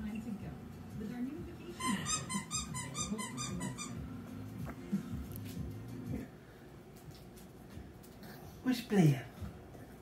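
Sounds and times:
high squeaks: 0:01.8 - 0:04.0.

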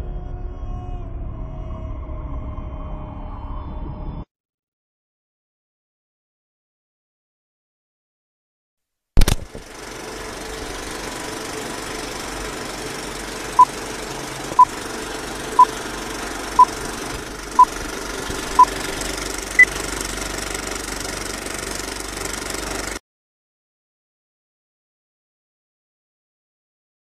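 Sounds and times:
sharp click: 0:09.2 - 0:09.6
film projector rattle and hiss: 0:09.2 - 0:23.0.

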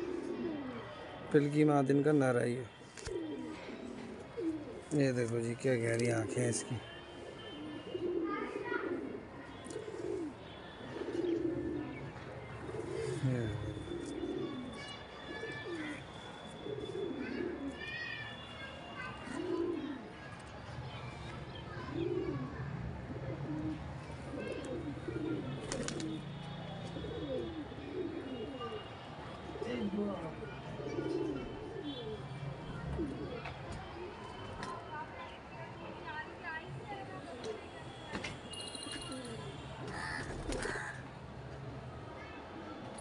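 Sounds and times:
pigeons cooing: 0:00.0 - 0:01.0, 0:03.1 - 0:05.0, 0:07.3 - 0:16.0, 0:16.6 - 0:17.8, 0:19.4 - 0:20.0, 0:21.8 - 0:26.2, 0:27.0 - 0:28.9, 0:30.8 - 0:34.2.

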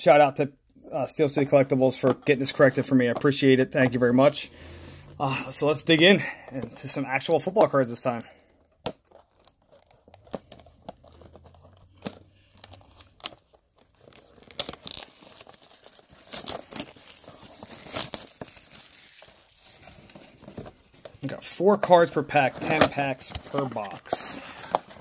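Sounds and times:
plastic wrap crinkling and tearing: 0:08.9 - 0:25.0.

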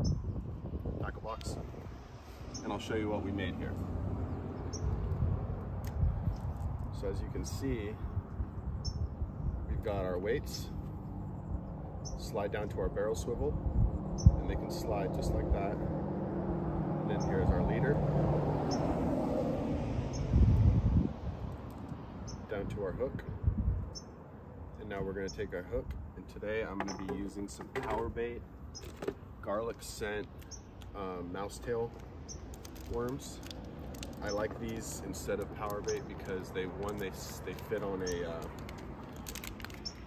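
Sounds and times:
bird chirp: 0:00.0 - 0:00.4, 0:02.3 - 0:03.3, 0:04.2 - 0:05.1, 0:08.5 - 0:09.5, 0:10.5 - 0:12.7, 0:13.7 - 0:14.5, 0:22.2 - 0:22.5, 0:23.9 - 0:24.2, 0:26.6 - 0:27.7, 0:30.4 - 0:31.2, 0:32.2 - 0:32.9, 0:34.2 - 0:36.7, 0:37.6 - 0:38.5, 0:39.7 - 0:40.0
outdoor background rumble: 0:00.0 - 0:40.0.

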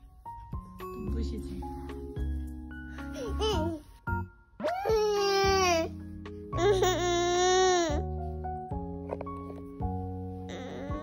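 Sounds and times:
soft background music: 0:00.0 - 0:11.0
toddler whining: 0:03.2 - 0:03.8, 0:04.6 - 0:05.9, 0:06.6 - 0:08.1, 0:10.5 - 0:11.0.

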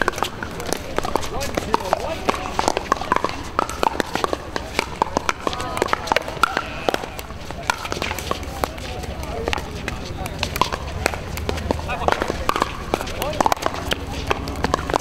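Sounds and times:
murmur of voices: 0:00.0 - 0:15.0
paddles hitting plastic balls: 0:00.0 - 0:15.0.

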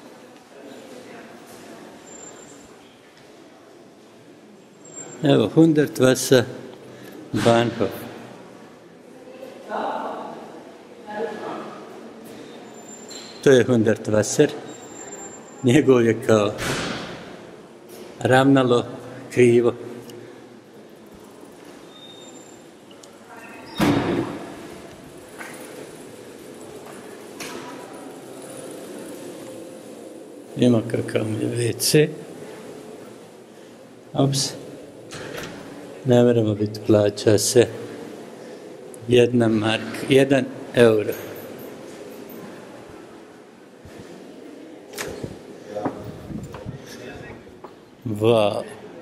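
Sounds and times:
station hall background noise: 0:00.0 - 0:49.0.

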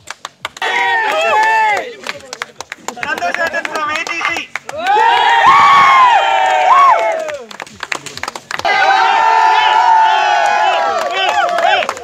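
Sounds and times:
hand claps: 0:00.0 - 0:05.2, 0:06.8 - 0:08.8, 0:10.9 - 0:12.0
crowd cheering: 0:00.6 - 0:12.0.

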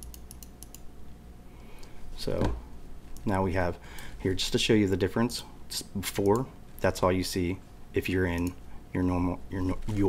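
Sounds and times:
light clicks of computer controls: 0:00.0 - 0:00.9, 0:01.8 - 0:04.1, 0:06.1 - 0:06.9, 0:08.3 - 0:08.6
low steady hum: 0:00.0 - 0:10.0.

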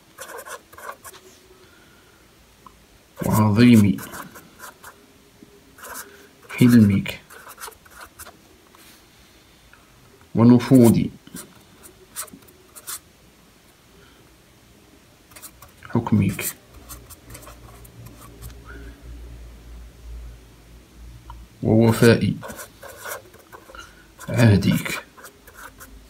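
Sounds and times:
pen writing on paper: 0:00.2 - 0:01.2, 0:04.0 - 0:04.9, 0:05.8 - 0:06.0, 0:16.4 - 0:18.6, 0:22.4 - 0:25.9.

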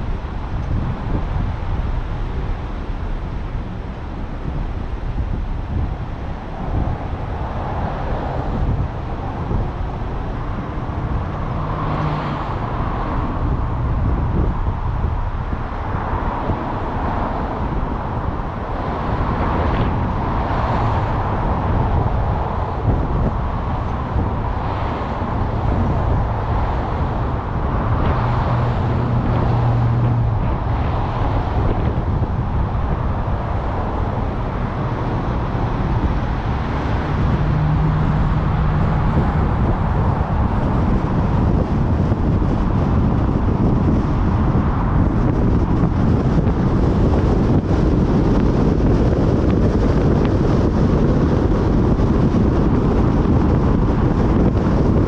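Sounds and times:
city traffic noise: 0:00.0 - 0:55.0
wind noise on microphone: 0:00.0 - 0:55.0.

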